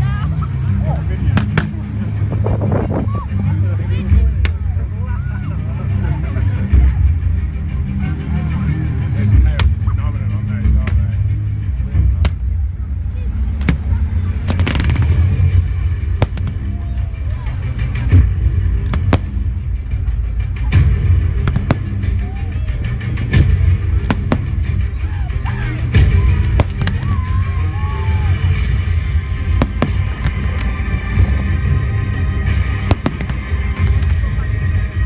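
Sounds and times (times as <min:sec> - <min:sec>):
firework shells bursting: 0:14.5 - 0:15.4, 0:16.2 - 0:16.7, 0:29.5 - 0:30.8, 0:32.6 - 0:34.2.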